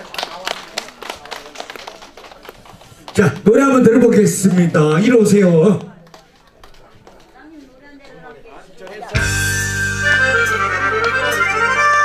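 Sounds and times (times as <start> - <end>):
scattered hand clapping: 0.0 - 4.8, 5.7 - 7.3, 10.4 - 11.6.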